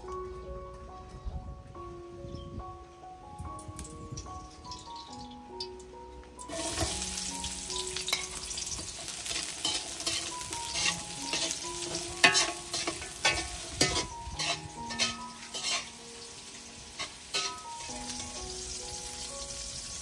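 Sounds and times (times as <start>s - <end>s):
metal spatula scraping wok: 6.5s - 18.7s
onions sizzling in hot oil: 6.5s - 20.0s.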